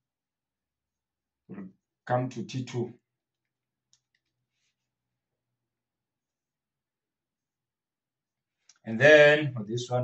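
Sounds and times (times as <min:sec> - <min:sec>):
man speaking: 0:02.1 - 0:03.0, 0:08.9 - 0:10.0.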